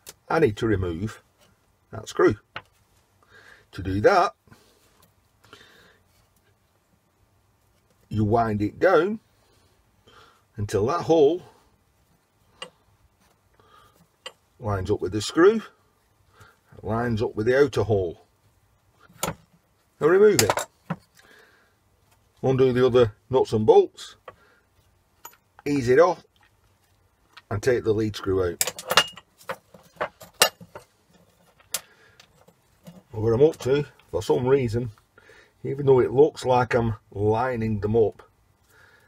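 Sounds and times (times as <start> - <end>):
faint handling sounds: 0.0 - 36.0
metal knocks and clinks: 28.6 - 33.1.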